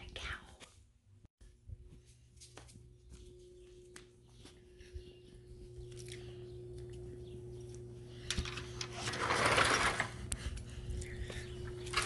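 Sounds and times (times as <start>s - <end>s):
woman speaking softly: 0.0s - 0.6s.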